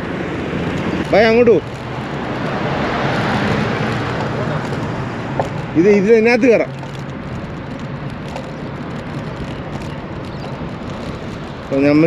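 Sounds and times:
car passing close: 0.0s - 12.0s.

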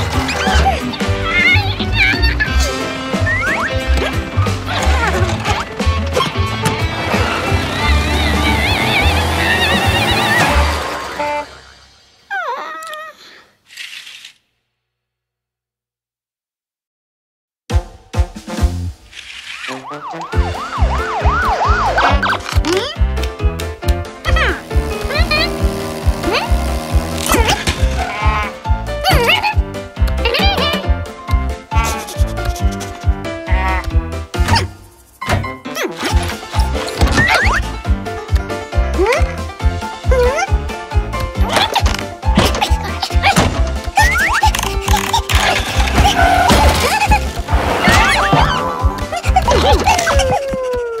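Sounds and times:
busy cartoon music with heavy bass: 0.0s - 12.2s, 17.7s - 50.4s
cartoon voice falling in pitch: 24.3s - 25.6s.

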